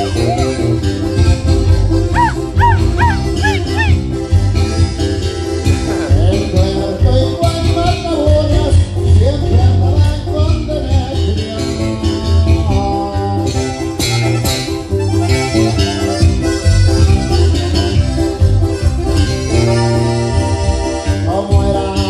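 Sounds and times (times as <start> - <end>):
button accordion: 0.0 - 7.4, 13.4 - 21.7
acoustic guitar: 0.0 - 22.0
electric bass: 0.0 - 22.0.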